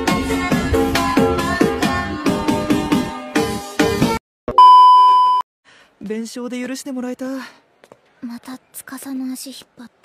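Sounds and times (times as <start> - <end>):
loud electronic beep: 4.5 - 5.4.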